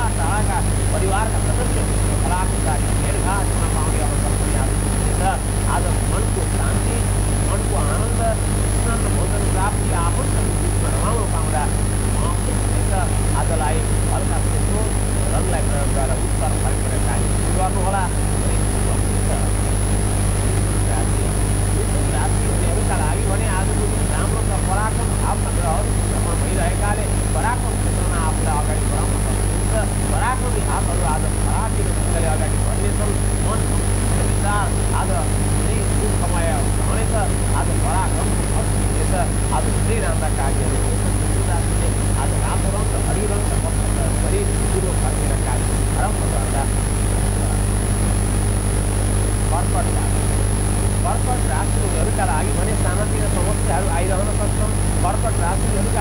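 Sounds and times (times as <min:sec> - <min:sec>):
low hum: 0:00.0 - 0:56.0
man talking: 0:00.0 - 0:56.0
thin high whine: 0:00.0 - 0:56.0.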